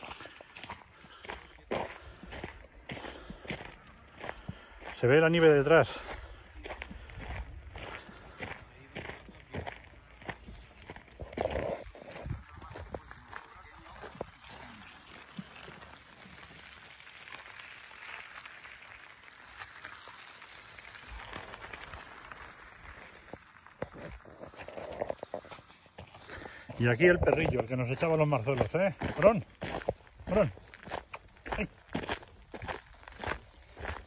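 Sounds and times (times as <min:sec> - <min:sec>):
footsteps crunching on gravel: 0:00.0 - 0:17.6, 0:18.4 - 0:34.0.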